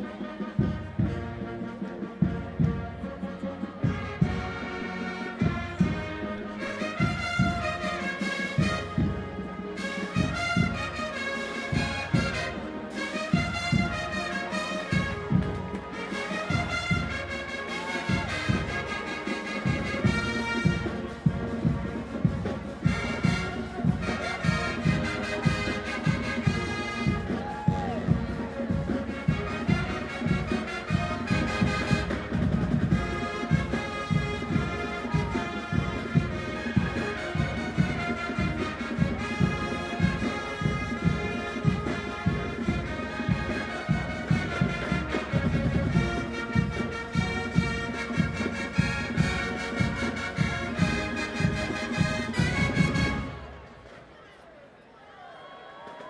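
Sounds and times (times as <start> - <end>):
steady drum beat: 0.0 - 53.7
brass band music: 0.0 - 54.2.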